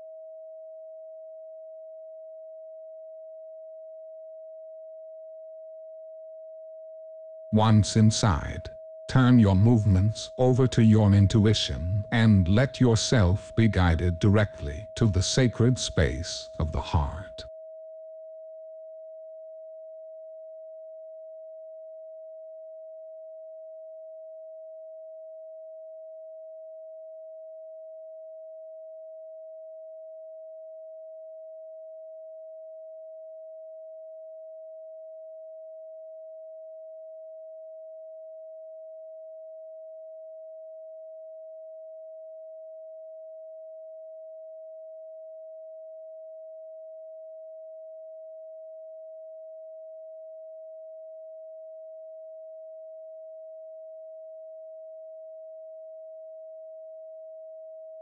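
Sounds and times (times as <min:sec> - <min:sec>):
pure sine tone: 0:00.0 - 0:09.1, 0:16.0 - 0:58.0.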